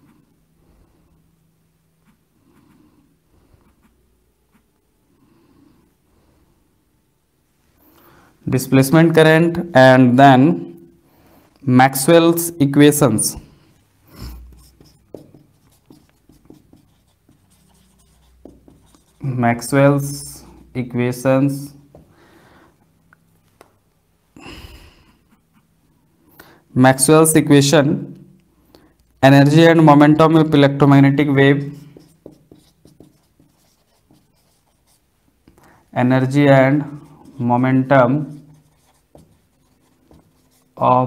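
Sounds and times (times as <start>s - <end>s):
marker writing on whiteboard: 2.0s - 4.7s, 13.2s - 20.7s, 31.2s - 40.8s.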